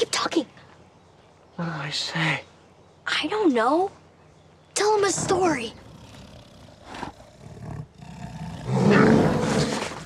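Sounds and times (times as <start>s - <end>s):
bear growling: 5.2s - 10.0s.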